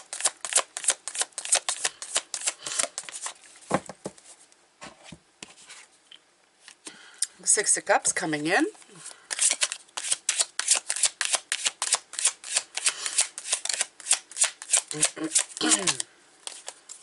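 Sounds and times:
cards being shuffled: 0.0 - 4.3, 9.3 - 17.0
person clearing throat: 14.9 - 16.1.

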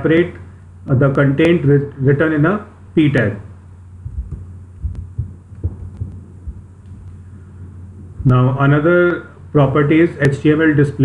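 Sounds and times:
steady low hum: 0.0 - 11.0
soft dull low thumps: 3.8 - 8.4.

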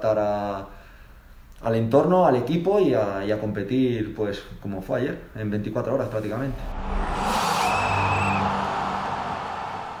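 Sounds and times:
low hum: 6.5 - 10.0
whooshing swell: 6.5 - 10.0.

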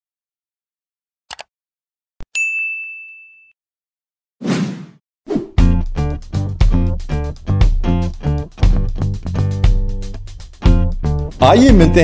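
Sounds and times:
high bell ding: 2.3 - 3.6.

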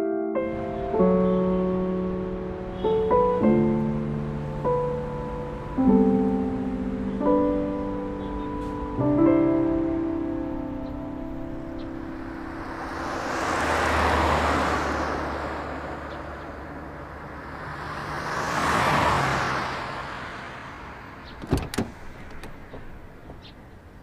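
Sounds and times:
car driving by: 11.4 - 23.1
car door latch clicks: 21.3 - 22.6.

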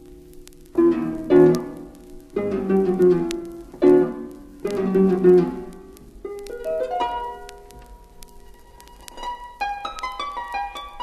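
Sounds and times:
vinyl surface clicks: 0.4 - 11.0.

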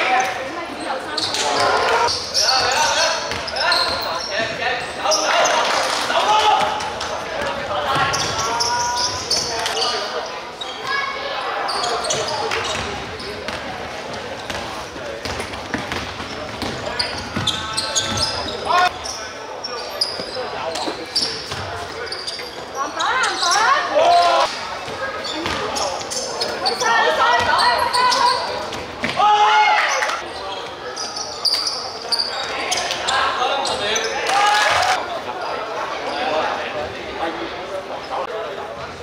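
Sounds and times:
basketball bouncing on court: 14.4 - 18.5, 24.8 - 25.7
people shouting: 29.2 - 30.2.

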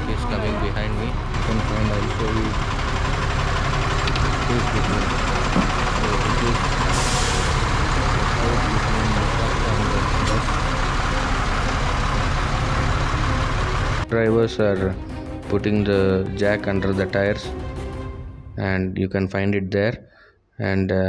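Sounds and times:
diesel engines idling: 0.0 - 18.4
air hiss: 6.9 - 7.6.

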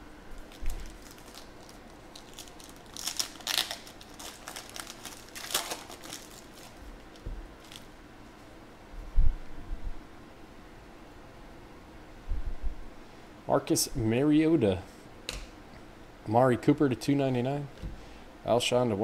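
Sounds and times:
foil wrapper tearing and crinkling: 0.4 - 7.9.

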